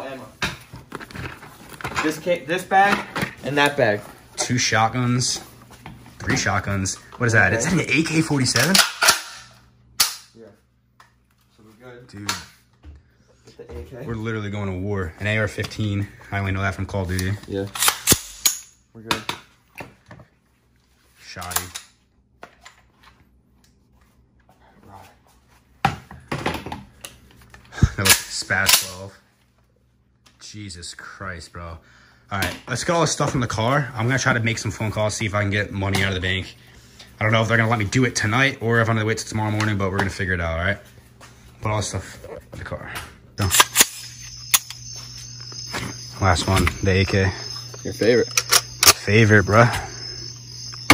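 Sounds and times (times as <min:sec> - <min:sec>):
gun parts clicking and clacking: 0:08.6 - 0:10.3, 0:17.7 - 0:18.7, 0:43.4 - 0:44.8, 0:48.2 - 0:49.0
sharp click: 0:43.4 - 0:44.8
crickets chirping: 0:43.4 - 0:50.9.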